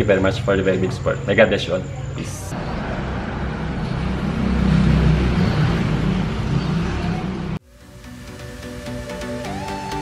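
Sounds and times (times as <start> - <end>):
electronic music: 7.6 - 10.0.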